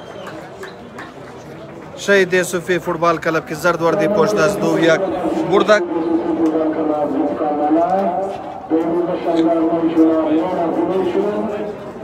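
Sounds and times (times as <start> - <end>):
man talking: 2.0 - 11.9.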